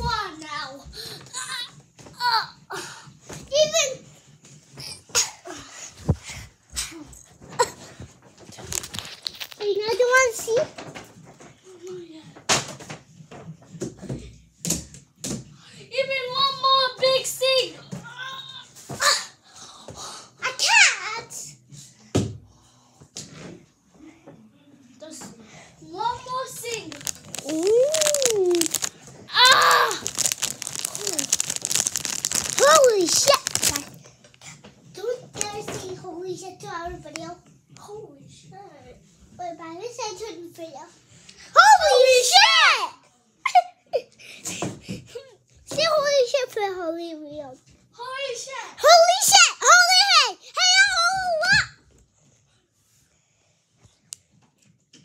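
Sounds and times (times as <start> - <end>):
crinkling handling noise: 7.6 - 9.8, 26.5 - 34.4.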